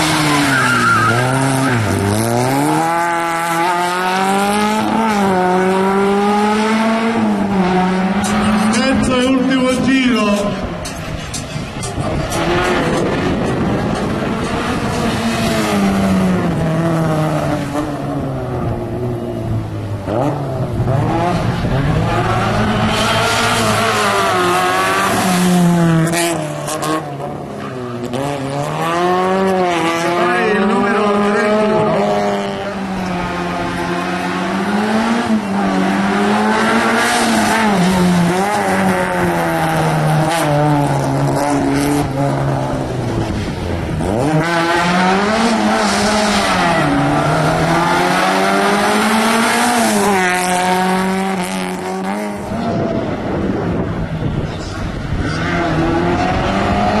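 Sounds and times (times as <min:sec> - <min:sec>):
car engine revving: 0:00.0 - 0:57.0.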